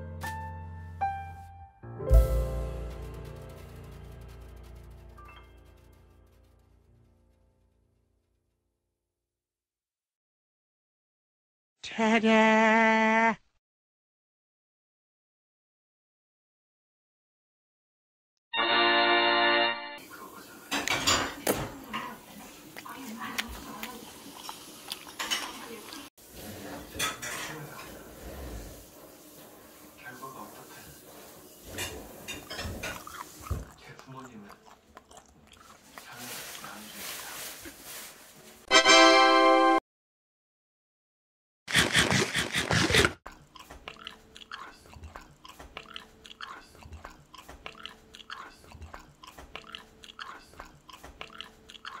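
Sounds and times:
person chewing wetly: 22.7 - 26.1, 32.4 - 36.7, 41.7 - 52.0.

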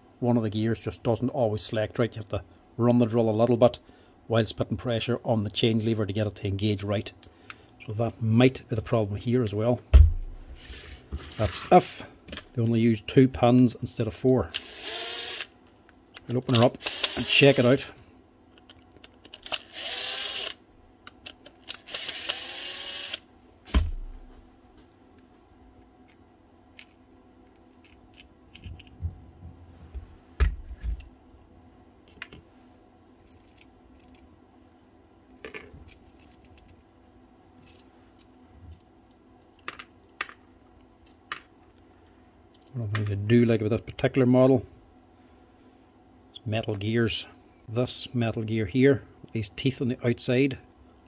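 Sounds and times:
cordless power driver running: 14.5 - 15.5, 16.5 - 17.8, 19.4 - 20.6, 21.7 - 23.2.

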